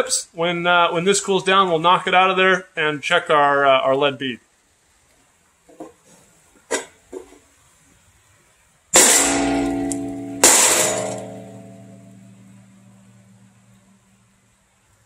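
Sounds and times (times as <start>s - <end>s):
ringing metal strikes: 9.0s - 14.0s.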